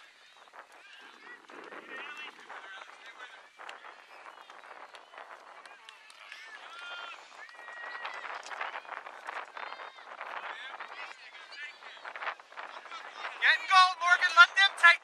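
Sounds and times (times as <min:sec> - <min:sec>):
man shouting: 0:13.4 - 0:15.0.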